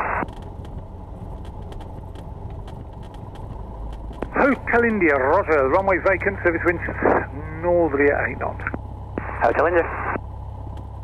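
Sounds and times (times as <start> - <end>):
piston engine droning: 0.0 - 11.0
faint ticks: 0.2 - 4.3.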